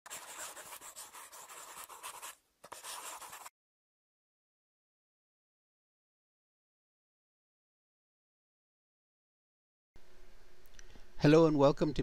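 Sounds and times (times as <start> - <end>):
drawing tool scratching rapidly: 0.1 - 3.5.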